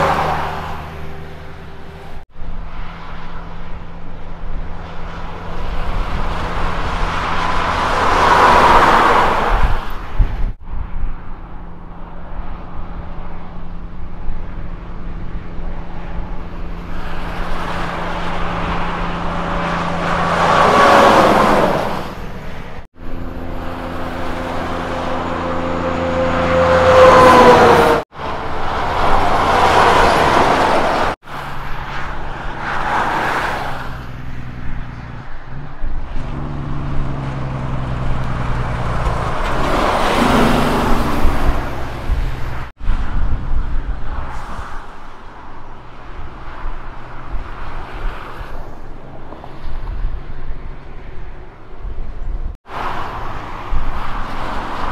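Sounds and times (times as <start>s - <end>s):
trucks driving past: 0.0s - 54.9s.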